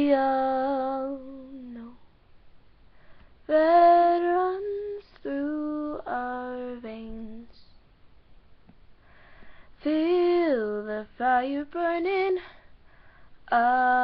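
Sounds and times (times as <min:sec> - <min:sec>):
woman singing unaccompanied: 0:00.0 - 0:02.0, 0:03.4 - 0:07.8, 0:09.8 - 0:12.7, 0:13.4 - 0:14.0.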